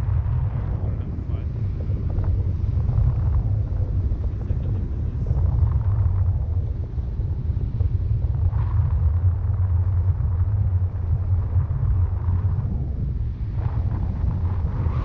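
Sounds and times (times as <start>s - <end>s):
wind rumbling on microphone: 0.0s - 15.0s.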